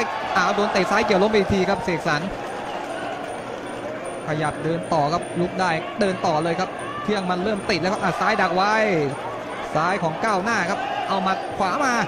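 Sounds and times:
commentator speaking: 0:00.0 - 0:02.3, 0:04.3 - 0:09.2
stadium crowd murmur: 0:00.0 - 0:12.0.

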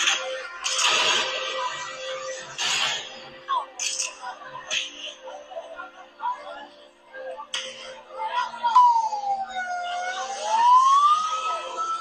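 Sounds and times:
emergency vehicle siren wailing: 0:08.4 - 0:12.0.

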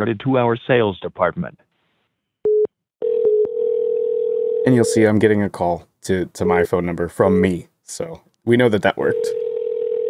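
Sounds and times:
telephone ringback tone: 0:02.5 - 0:04.7, 0:09.1 - 0:10.0.

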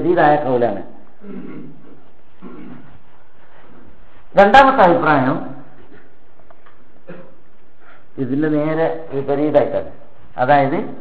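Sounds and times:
recording hiss: 0:00.0 - 0:11.0.

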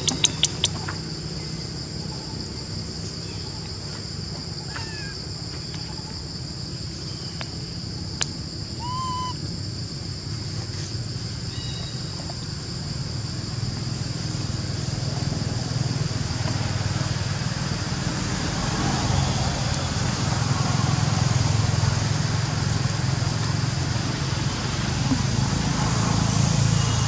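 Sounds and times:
short chirping calls: 0:00.0 - 0:00.8, 0:04.7 - 0:05.2, 0:08.8 - 0:09.4
high-pitched insect drone: 0:08.8 - 0:09.4.

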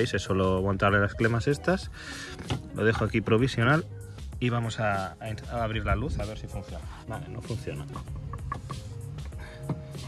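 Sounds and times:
background music with held notes: 0:00.0 - 0:10.0.

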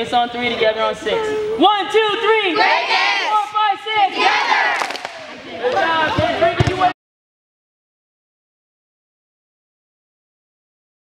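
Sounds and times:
children shouting a cheer: 0:02.6 - 0:03.4, 0:04.0 - 0:05.2.

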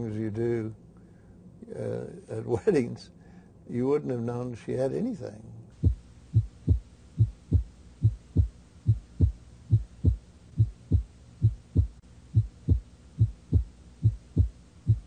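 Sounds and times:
heartbeat thumps: 0:05.8 - 0:15.0.

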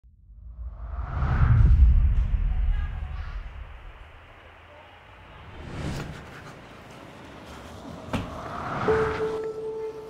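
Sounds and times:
whoosh with deep rumble: 0:00.0 - 0:04.4.

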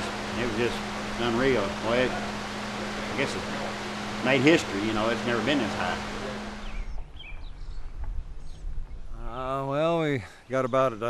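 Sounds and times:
electric fan humming: 0:00.0 - 0:07.3
bird chirps: 0:06.5 - 0:09.1
wind rumble on microphone: 0:06.6 - 0:09.4.

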